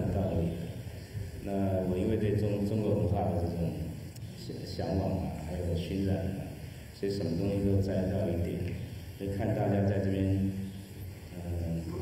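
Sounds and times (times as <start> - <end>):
man speaking in a low voice: 0.0 - 12.0.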